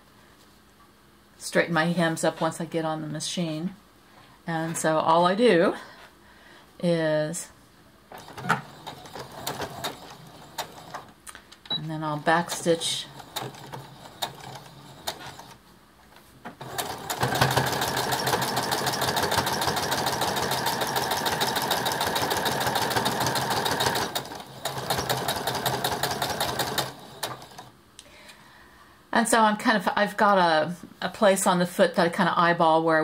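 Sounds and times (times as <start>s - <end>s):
sewing machine stitching: 8.1s - 11.1s, 12.1s - 15.6s, 16.6s - 27.7s.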